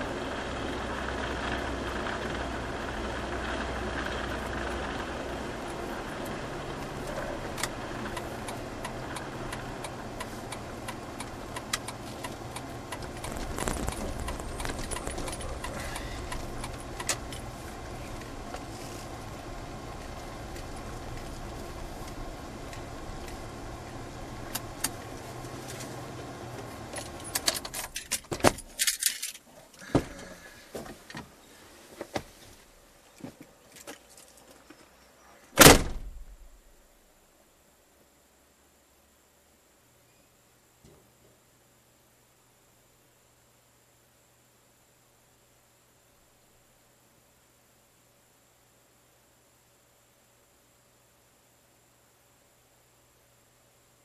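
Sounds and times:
car engine rumble: 0:00.0 - 0:37.1
clicks and rattles: 0:07.6 - 0:17.5, 0:26.9 - 0:29.5
keys jangling: 0:13.2 - 0:17.4, 0:27.1 - 0:29.5.

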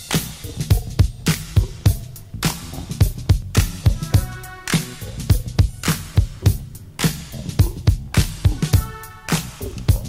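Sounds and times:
hip-hop beat: 0:00.0 - 0:10.0
held melodic note: 0:03.7 - 0:06.8.

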